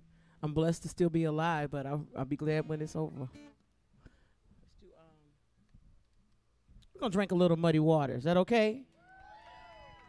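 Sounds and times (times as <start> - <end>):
person speaking: 0.4 - 3.5.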